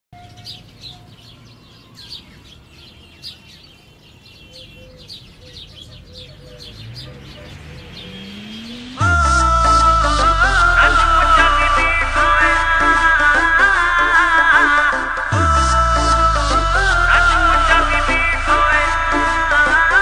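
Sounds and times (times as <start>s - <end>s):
birds chirping: 0.1s - 20.0s
soft rising tone: 6.6s - 20.0s
deep falling bass sweep: 6.8s - 20.0s
song music: 7.9s - 20.0s.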